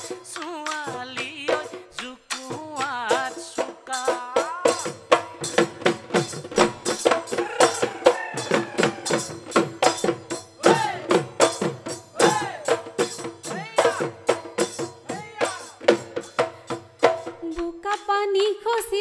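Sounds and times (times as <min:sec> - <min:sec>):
drums beating fast rhythm: 0:00.0 - 0:19.0
person singing: 0:07.4 - 0:09.3.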